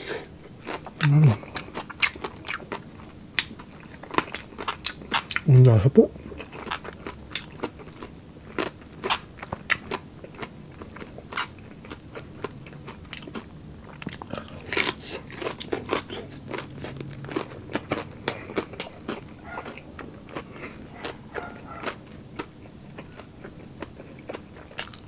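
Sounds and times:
chewing crispy fried pork: 0.0s - 25.0s.

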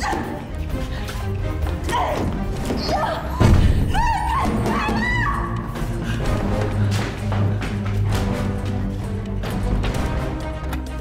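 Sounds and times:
dramatic background music: 0.0s - 11.0s.

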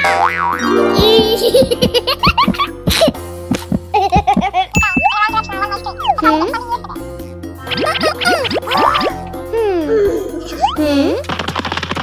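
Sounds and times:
cheerful background music: 0.0s - 11.3s
cartoon boing and warble effects: 7.6s - 9.5s.

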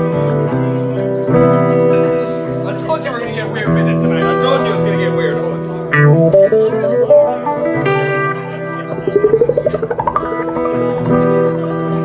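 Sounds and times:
amplified acoustic guitar notes: 5.9s - 11.7s
warbling rising pitch sweep: 8.9s - 11.6s.

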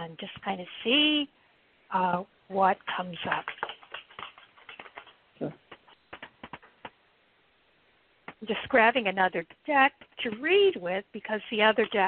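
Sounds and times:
cards tapping and flicking: 3.3s - 7.0s.

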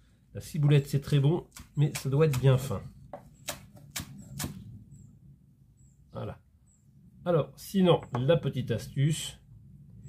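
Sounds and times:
knife chopping on wooden board: 1.5s - 4.6s.

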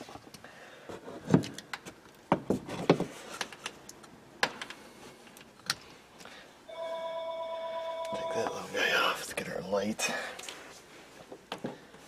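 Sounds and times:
steady electronic beep: 6.7s - 8.8s.

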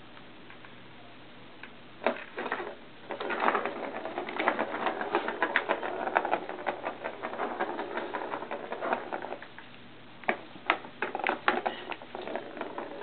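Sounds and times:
ball rattling around plastic track: 2.0s - 9.6s, 10.3s - 13.0s.

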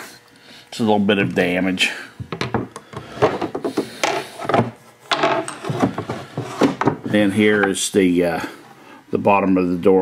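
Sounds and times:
wooden chest knocks and rubbing: 3.3s - 7.2s.

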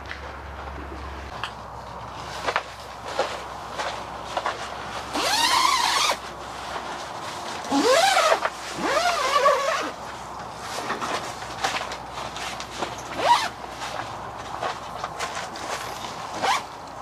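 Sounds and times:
tent zipper pulled open: 5.1s - 6.3s, 7.6s - 10.0s, 13.1s - 13.6s, 15.6s - 16.7s.

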